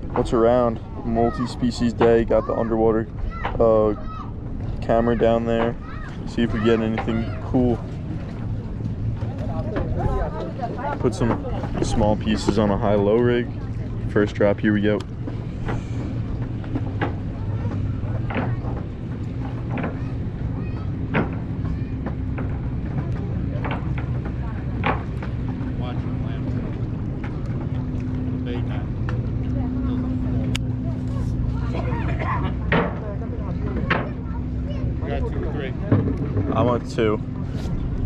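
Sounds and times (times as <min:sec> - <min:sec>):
boat engine drone: 0:00.0 - 0:38.0.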